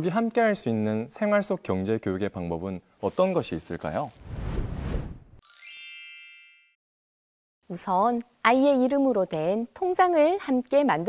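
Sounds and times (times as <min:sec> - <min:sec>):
whoosh: 0:04.1 - 0:05.4.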